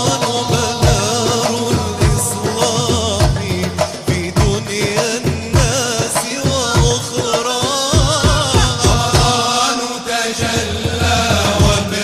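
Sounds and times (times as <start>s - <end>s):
hand drums: 0.0s - 9.7s, 10.4s - 12.0s
male group chanting in unison: 0.0s - 12.0s.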